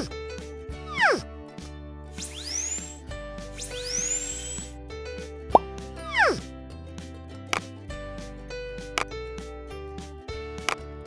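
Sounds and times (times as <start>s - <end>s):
background music: 0.0s - 11.0s
falling bloop: 2.2s - 3.0s
rising whistles: 2.2s - 4.8s.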